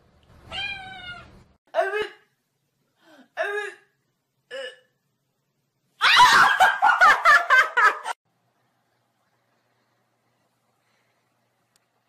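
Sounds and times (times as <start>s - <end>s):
kitten meow: 0.5s - 1.3s.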